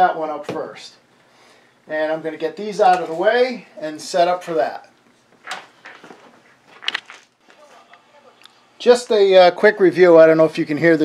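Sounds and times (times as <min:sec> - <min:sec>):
antennas rustling and scraping: 0:05.1 - 0:08.2.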